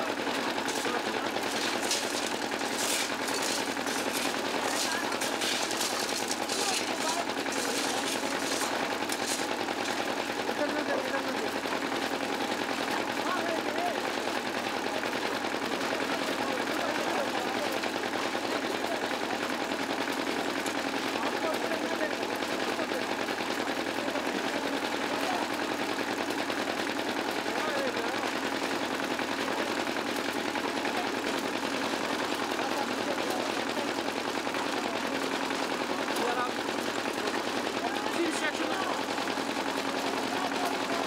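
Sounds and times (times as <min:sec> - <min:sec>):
faint voices: 0:00.0 - 0:11.7
diesel engine chugging: 0:00.0 - 0:41.0.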